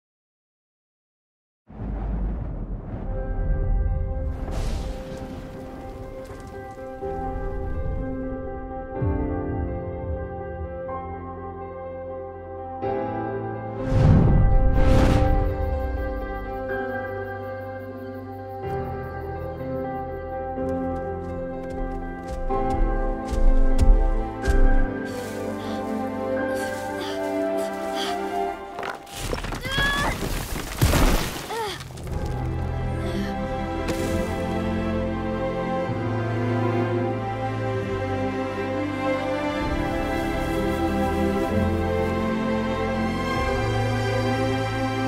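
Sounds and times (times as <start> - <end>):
orchestral music: 1.8 - 29.2, 32.2 - 45.0
thuds on rocks: 28.8 - 32.7
soft sustained music chords: 32.6 - 45.0.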